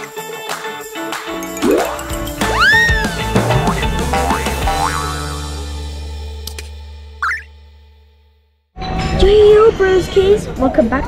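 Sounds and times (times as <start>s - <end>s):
bright jingle music: 0.0s - 4.7s
upward-sweeping cartoon effects: 1.6s - 5.6s.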